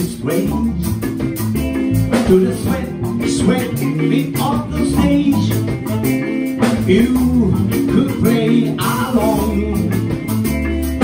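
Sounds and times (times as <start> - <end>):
person singing: 0.0 - 1.2, 2.0 - 11.0
drums: 0.0 - 11.0
electric bass: 0.0 - 11.0
electric guitar: 0.0 - 11.0
keyboard: 0.0 - 11.0
alto saxophone: 4.7 - 7.0.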